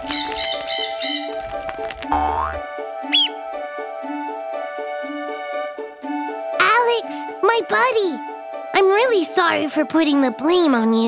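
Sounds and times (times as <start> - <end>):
cheerful background music: 0.0 - 11.0.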